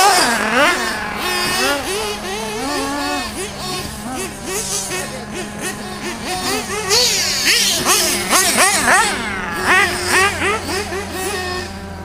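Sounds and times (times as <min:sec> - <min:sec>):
radio-controlled car motors revving: 0:00.0 - 0:12.0.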